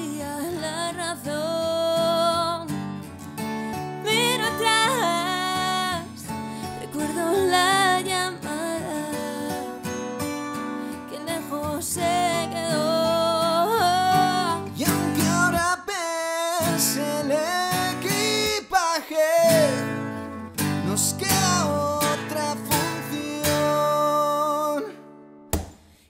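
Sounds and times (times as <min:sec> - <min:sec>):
acoustic guitar strumming chords: 0:00.0 - 0:25.5.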